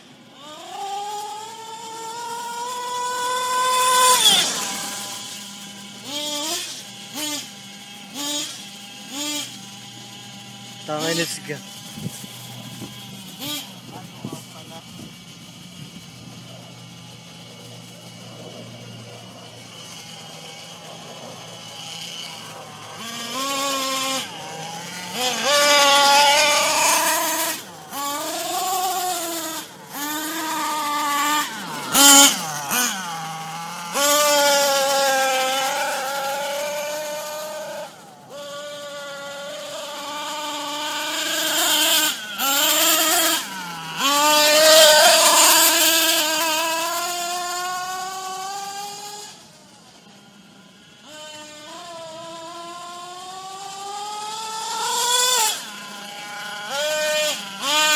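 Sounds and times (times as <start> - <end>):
toy car motor whining: 0.0 - 57.9.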